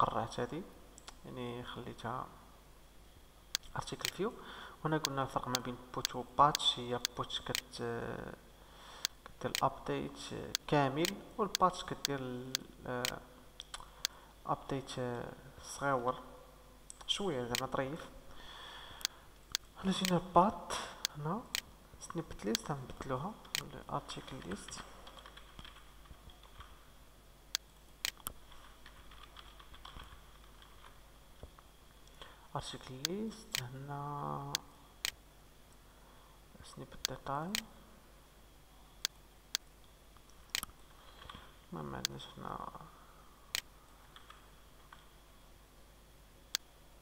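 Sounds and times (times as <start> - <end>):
man speaking: 0.0 - 2.4, 3.6 - 8.5, 9.4 - 13.4, 14.4 - 16.4, 17.0 - 18.2, 19.8 - 25.0, 32.5 - 34.7, 36.6 - 37.8, 41.7 - 43.0
faint breath: 4.4 - 4.8, 8.6 - 9.2, 13.8 - 14.4, 18.3 - 19.3
typing on computer keyboard: 24.4 - 26.7, 28.8 - 30.9.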